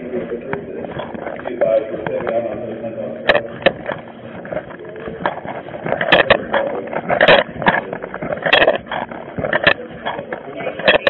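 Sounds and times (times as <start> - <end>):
camera rubbing against uniform: 0.0 - 11.0
gear rattling with steps: 0.0 - 11.0.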